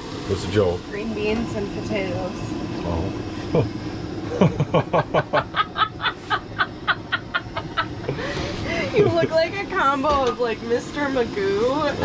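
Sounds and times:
person laughing hard: 4.3s - 9.4s.

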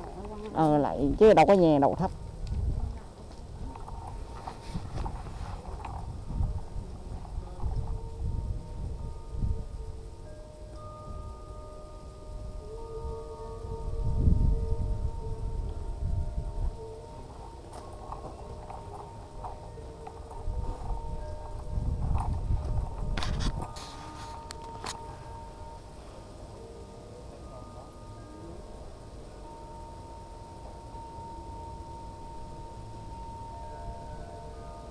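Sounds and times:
wind buffeting microphone: 0.0s - 26.0s
faint thin steady tones: 0.0s - 34.9s.

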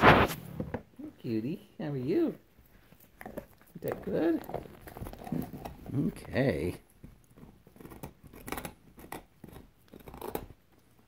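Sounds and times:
dog gnawing on bone: 2.5s - 11.0s.

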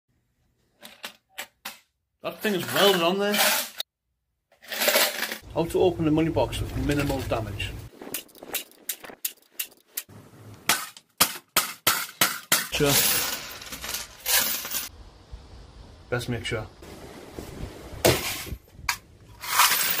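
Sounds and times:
coins rattling in a tin box: 4.7s - 5.4s, 12.8s - 14.9s
hammer crushing tin box: 10.7s - 14.8s.

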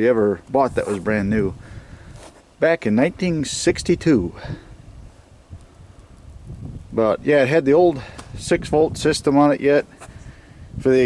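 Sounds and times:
wind rumble on microphone: 0.5s - 2.4s, 3.1s - 11.0s.

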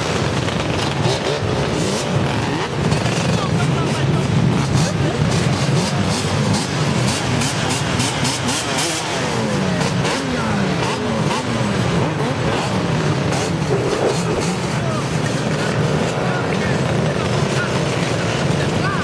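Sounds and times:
dirt bike engines revving: 0.0s - 19.0s
engines idling drone: 0.0s - 19.0s.

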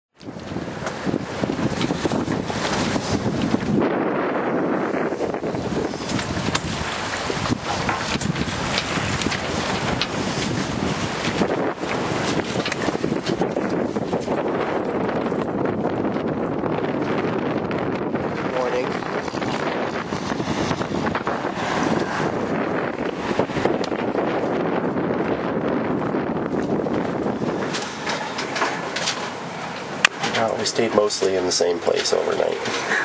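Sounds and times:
water rushing along hull: 0.2s - 33.0s
wind gusting on microphone: 0.2s - 33.0s.

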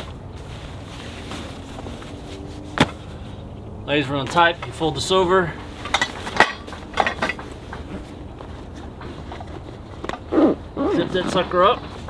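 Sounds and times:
fabric bag rustling: 0.0s - 3.1s.

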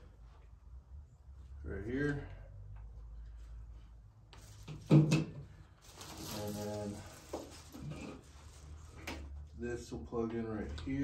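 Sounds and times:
plastic wrapping crinkling: 5.8s - 8.2s.

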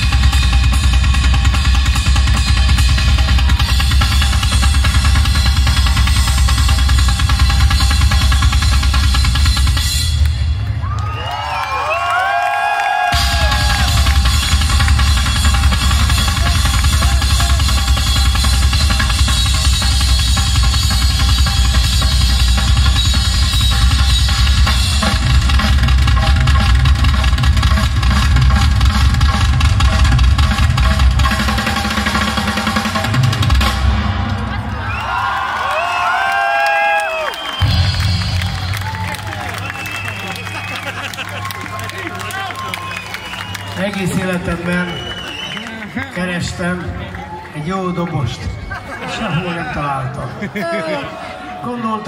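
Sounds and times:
live rock music: 0.0s - 11.1s, 13.1s - 34.9s, 37.5s - 51.1s
rapid bass drum and drum roll: 0.0s - 11.3s, 13.0s - 34.7s.

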